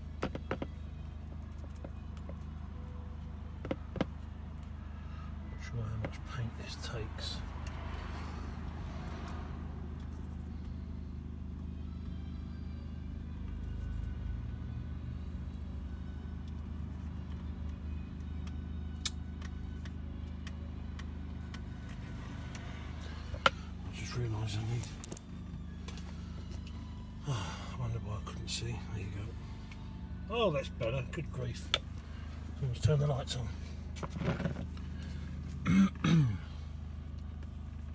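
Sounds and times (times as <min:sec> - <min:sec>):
low mechanical hum: 0:00.0 - 0:37.9.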